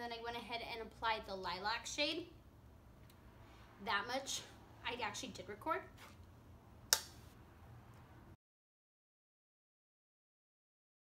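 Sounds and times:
sharp click: 6.9 - 7.2.

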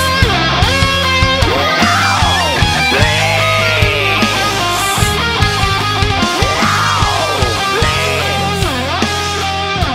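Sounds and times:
steady drum beat: 1.3 - 9.3
electric lead guitar swooping: 1.4 - 9.5.

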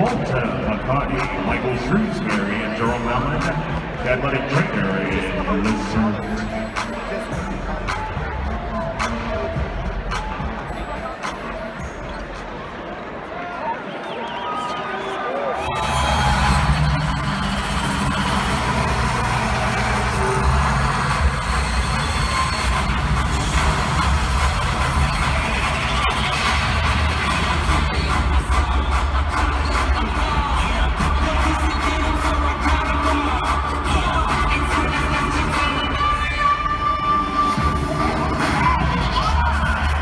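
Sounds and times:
loud bass-heavy music over speakers: 0.0 - 12.7, 15.6 - 40.0
arena crowd noise: 0.0 - 40.0.

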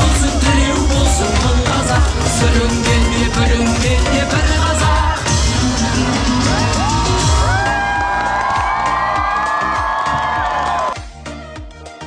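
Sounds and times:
live concert music with steady beat: 0.0 - 12.0
audience cheering: 6.2 - 11.0.

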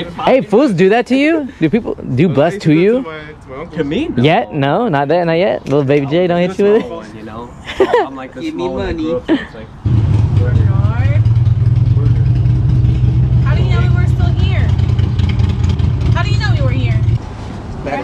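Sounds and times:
vehicle engine rumbling: 9.7 - 18.0.

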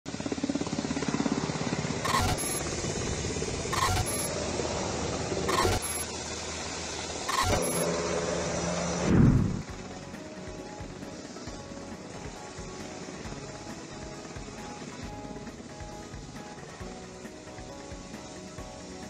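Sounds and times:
helicopter rotor chop: 0.1 - 19.0.

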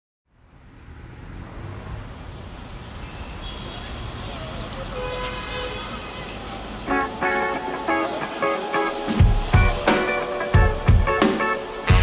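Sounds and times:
rumble of road traffic: 0.2 - 12.0.

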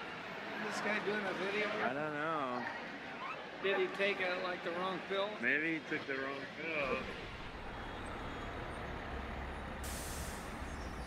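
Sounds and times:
vehicle rumble: 6.8 - 11.0
air hiss: 9.8 - 10.7.

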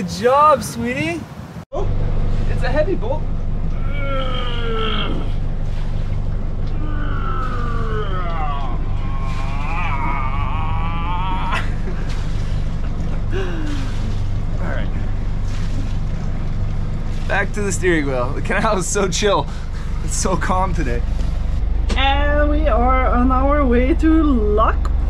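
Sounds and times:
boat engine idling: 1.7 - 25.0.

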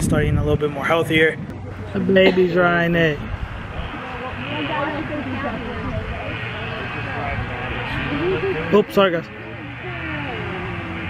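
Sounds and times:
steady low rumble: 0.0 - 8.6
indistinct voices talking: 0.0 - 11.0.

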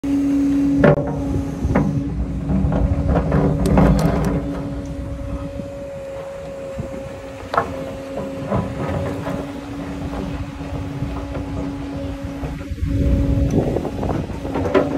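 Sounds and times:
excavator engine rumble with whine: 0.0 - 14.9.

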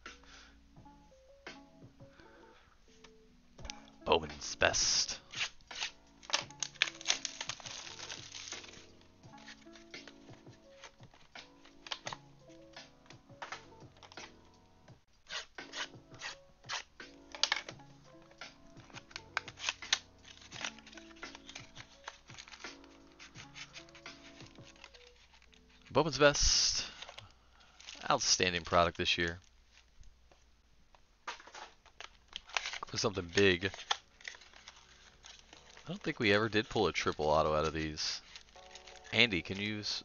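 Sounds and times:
soft background music: 0.0 - 40.0
plastic shrink-wrap crackling and tearing: 5.0 - 12.8, 15.3 - 30.0, 31.4 - 40.0.

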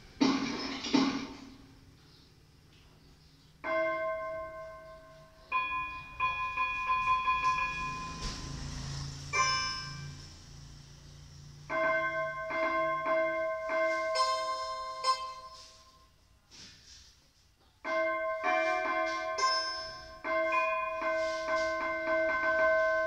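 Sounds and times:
bell-like electronic keyboard notes: 3.4 - 10.7, 11.7 - 16.2, 17.9 - 23.0.

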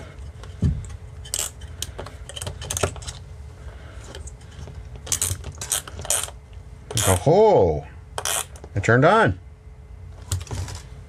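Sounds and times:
metal wrench clicking: 1.2 - 1.6, 8.2 - 8.6.

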